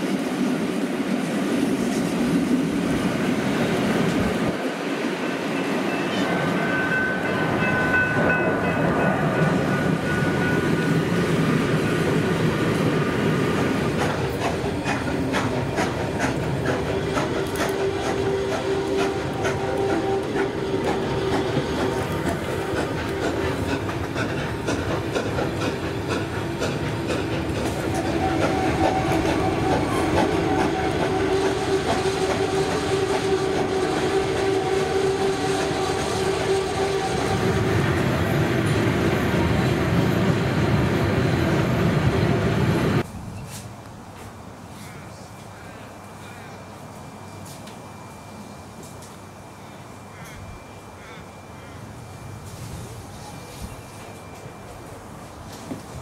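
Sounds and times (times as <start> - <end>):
train wheel and rail rumble: 0.0 - 56.0
long steady tones: 2.9 - 43.1, 45.4 - 56.0.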